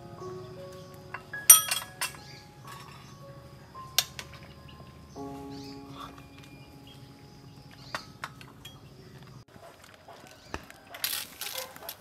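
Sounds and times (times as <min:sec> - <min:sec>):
metal ladle clinking on steel pot: 0:01.1 - 0:03.0.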